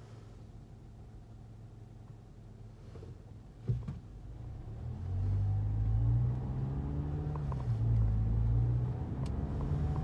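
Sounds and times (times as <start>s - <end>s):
car engine accelerating: 4.1s - 10.0s.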